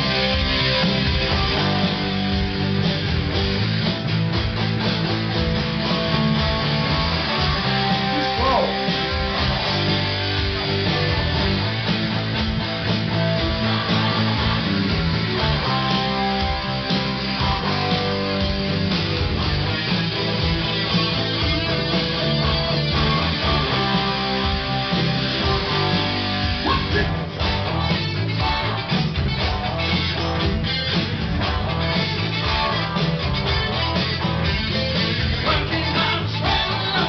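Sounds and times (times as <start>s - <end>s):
acoustic-electric guitar: 0.0s - 37.0s
electric guitar: 0.0s - 37.0s.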